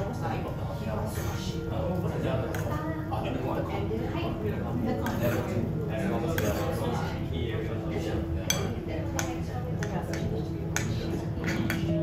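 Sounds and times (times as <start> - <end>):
metal spoon scraping ceramic bowl: 6.3 - 6.8
spoon clinking against bowl: 8.5 - 12.0.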